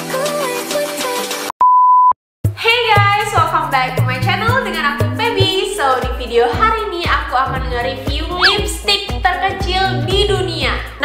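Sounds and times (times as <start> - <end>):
woman speaking: 2.6 - 11.0
intro music: 2.7 - 10.5.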